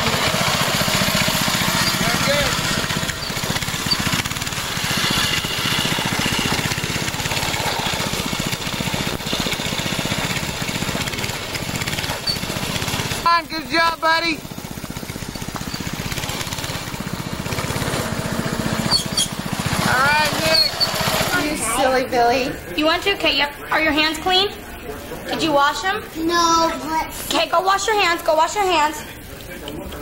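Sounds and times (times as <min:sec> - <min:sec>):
go-kart engine puttering: 0:00.0 - 0:22.0.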